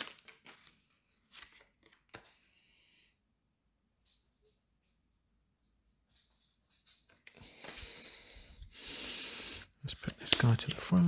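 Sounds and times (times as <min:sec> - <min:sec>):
person breathing close to microphone: 0:07.4 - 0:09.8.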